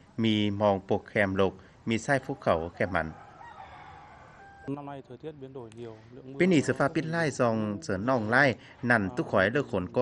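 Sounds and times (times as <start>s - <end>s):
rooster crowing: 2.8s - 4.7s.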